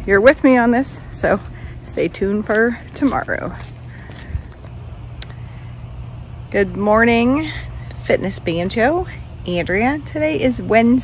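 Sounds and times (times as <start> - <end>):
outdoor background rumble: 0.0 - 11.0.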